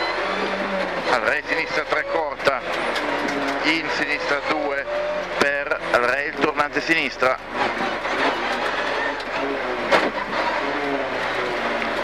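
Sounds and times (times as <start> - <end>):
car engine running from inside: 0.0 - 12.0.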